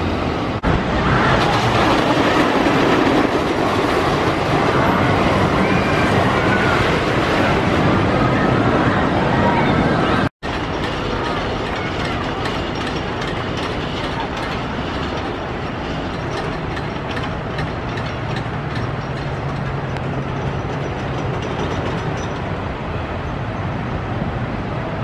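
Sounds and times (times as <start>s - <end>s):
roller coaster rumbling on track: 0.0s - 25.0s.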